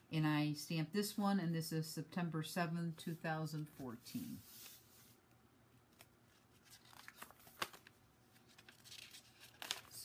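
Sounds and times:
paper rustling: 0:05.9 - 0:10.0.

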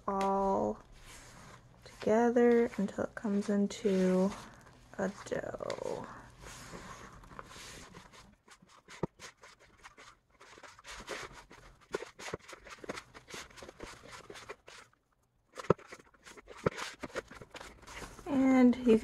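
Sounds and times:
hand squishing dough: 0:00.0 - 0:15.0
dough scraping in plastic bowl: 0:00.1 - 0:15.0.

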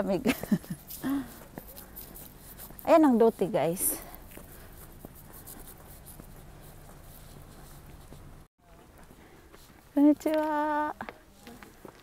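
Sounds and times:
footsteps on paved path: 0:00.0 - 0:12.0.

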